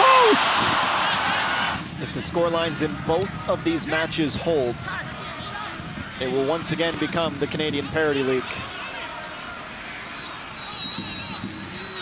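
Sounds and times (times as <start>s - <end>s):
crowd and player voices: 0.0s - 12.0s
long high-pitched whistle: 10.1s - 12.0s.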